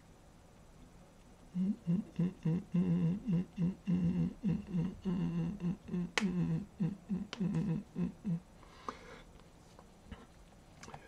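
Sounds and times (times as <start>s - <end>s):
man humming a rhythmic tune: 1.5s - 8.4s.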